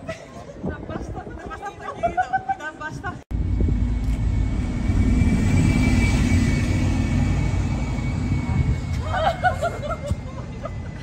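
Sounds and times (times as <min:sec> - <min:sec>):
loud low rumbling: 0:03.3 - 0:09.6
faint high whine: 0:03.4 - 0:09.1.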